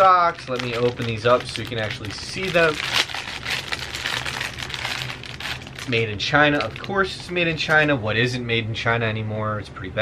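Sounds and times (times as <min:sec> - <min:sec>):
plastic packaging crinkling: 0:00.0 - 0:08.0.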